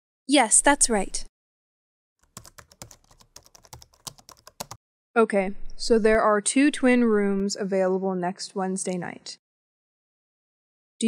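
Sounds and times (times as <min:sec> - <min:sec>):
typing on computer keyboard: 0:02.2 - 0:04.8.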